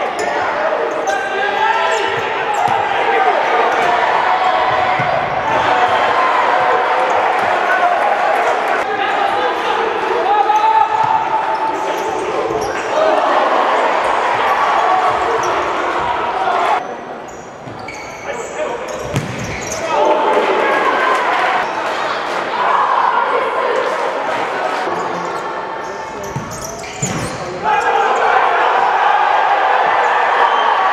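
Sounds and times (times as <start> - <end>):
people shouting: 0.0 - 16.8, 27.6 - 30.9
players' footwork on wooden court: 18.9 - 19.8
ball being kicked: 19.1 - 19.5.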